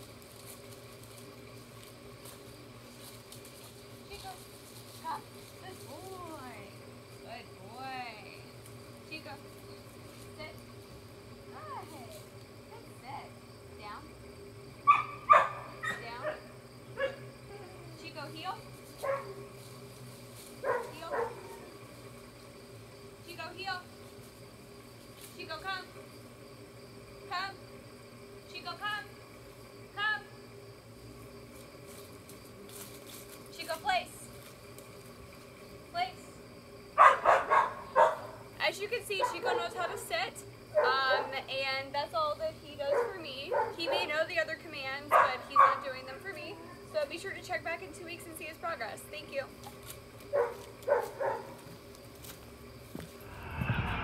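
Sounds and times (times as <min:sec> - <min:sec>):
quiet outdoor background: 0:00.0 - 0:54.0.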